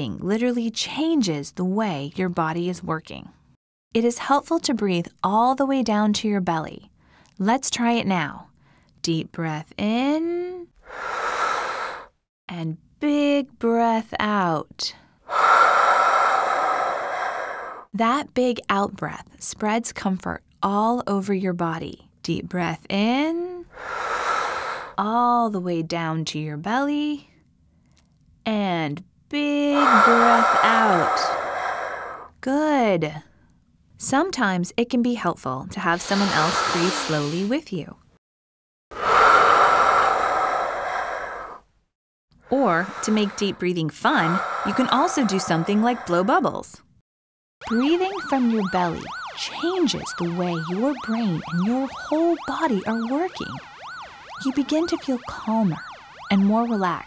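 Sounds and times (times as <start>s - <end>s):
person breathing out slowly: 10.8s - 12.1s, 15.3s - 17.9s, 23.7s - 25.0s, 29.8s - 32.3s, 36.0s - 37.5s, 39.0s - 41.7s, 42.8s - 46.3s.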